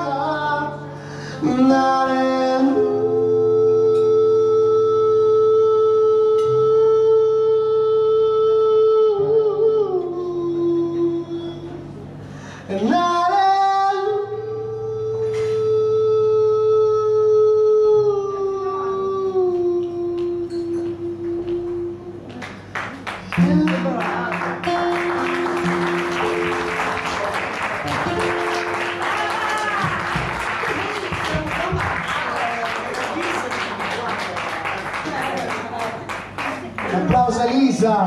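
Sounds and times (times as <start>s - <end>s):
person singing a long note: 0.0s - 11.8s
acoustic guitar: 0.0s - 38.0s.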